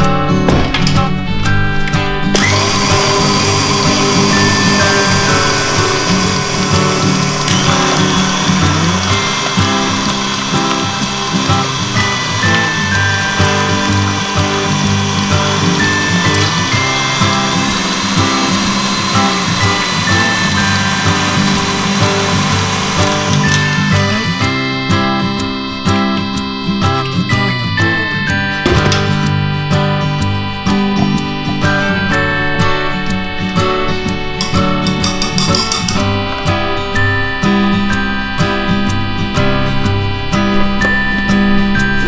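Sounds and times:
background music: 0.0s - 42.0s
stand mixer motor running: 2.3s - 27.2s.

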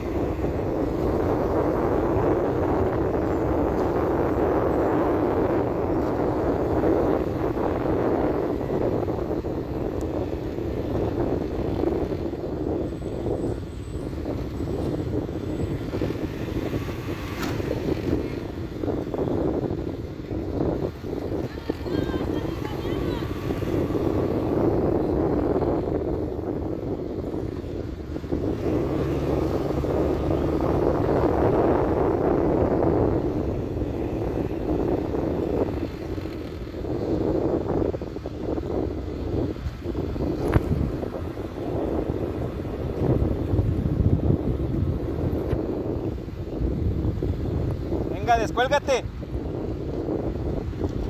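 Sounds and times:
vehicle rumble on road: 0.0s - 51.0s
wind buffeting microphone: 0.0s - 51.0s.

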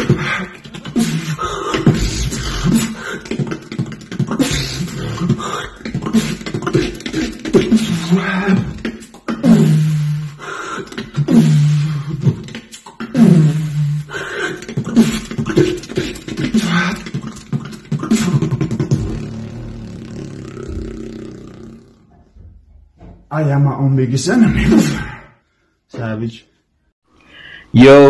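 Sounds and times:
beatboxing bass notes: 0.0s - 22.1s
beatboxing clicks: 0.0s - 22.1s
low hum: 18.7s - 22.5s.

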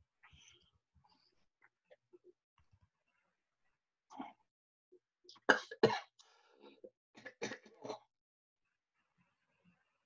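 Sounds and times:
person coughing: 5.4s - 6.1s.

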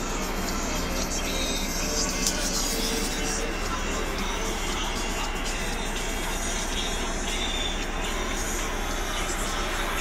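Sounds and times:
bus engine droning: 0.0s - 10.0s.

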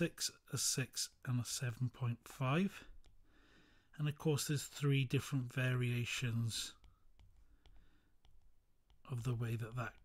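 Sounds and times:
stylus tapping on tablet screen: 2.9s - 3.2s, 6.7s - 10.0s.

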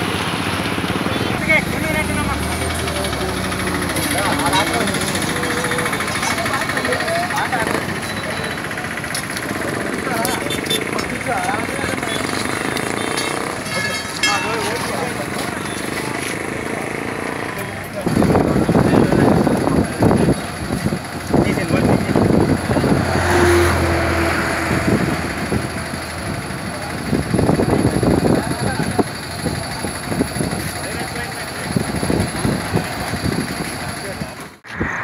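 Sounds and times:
road vehicle noise: 0.0s - 35.0s
people talking: 0.8s - 35.0s.

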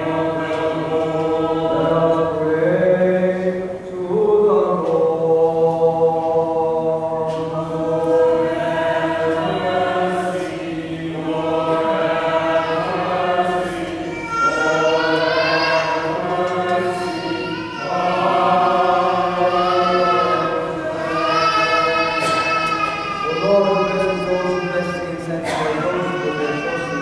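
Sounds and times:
voices singing liturgical chant: 0.0s - 27.0s.

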